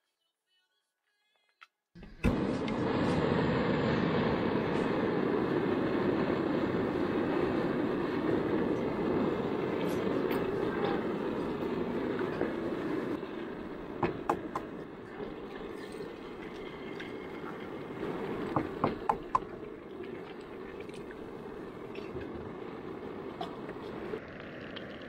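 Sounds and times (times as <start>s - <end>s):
gas burner flame hissing: 2.0s - 25.0s.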